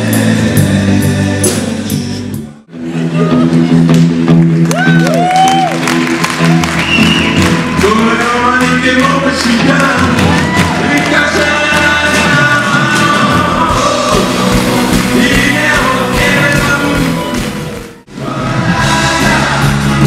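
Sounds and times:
live rock band playing: 0.0 - 20.0
voices singing: 7.9 - 20.0.

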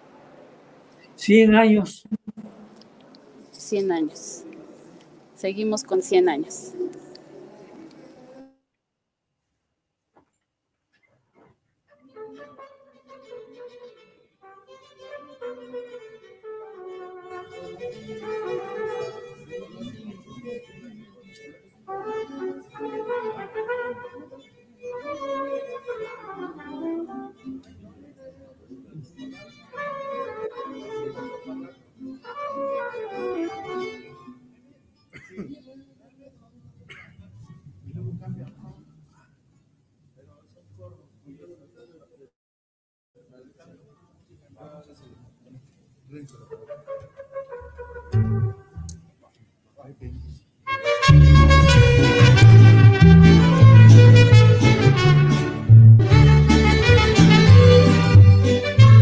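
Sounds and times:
mariachi band playing: 1.2 - 5.0, 12.1 - 20.9, 21.9 - 27.7, 29.2 - 34.4, 46.5 - 49.0, 50.7 - 59.0.

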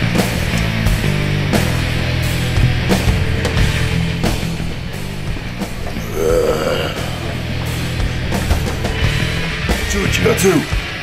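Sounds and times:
heavy rock music: 0.0 - 11.0
man's throaty vocal sound: 5.9 - 7.5.

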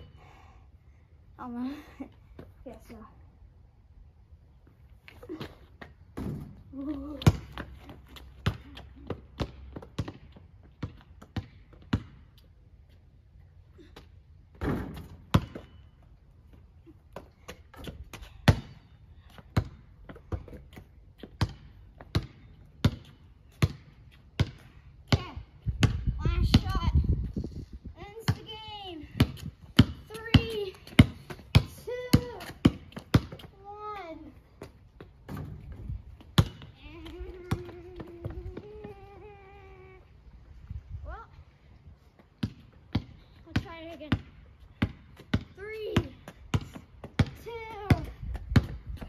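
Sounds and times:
basketball bouncing on pavement: 5.1 - 12.6, 13.8 - 27.3, 28.0 - 39.4, 42.2 - 49.0.

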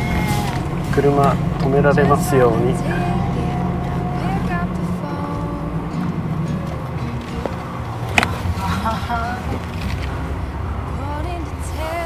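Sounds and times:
car interior hum: 0.0 - 12.0.

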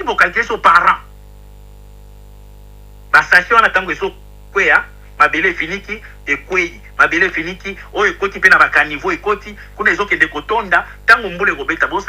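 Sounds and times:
low hum with buzz and hiss: 0.0 - 12.0.

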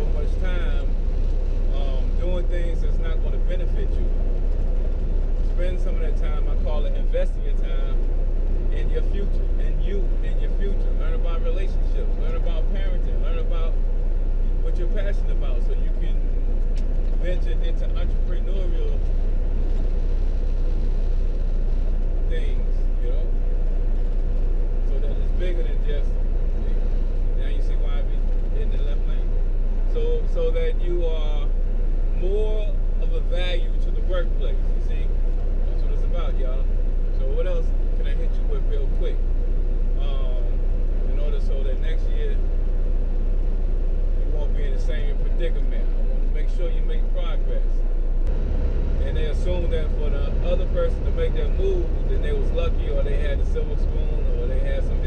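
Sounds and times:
truck engine and road rumble: 0.0 - 55.0.

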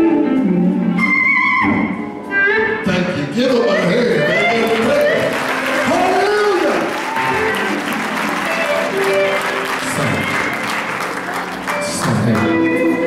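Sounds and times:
keyboard and bass playing: 0.0 - 13.0
audience applauding: 4.1 - 13.0.

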